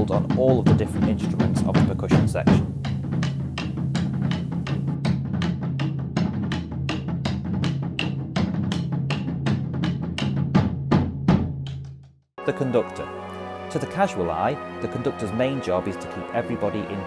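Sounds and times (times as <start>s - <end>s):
drums and cymbals played with sticks: 0.0s - 11.6s.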